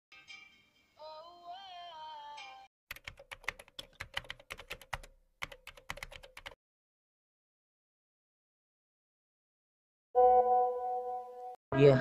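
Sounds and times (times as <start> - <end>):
pop song with sung note: 1.0 - 2.7.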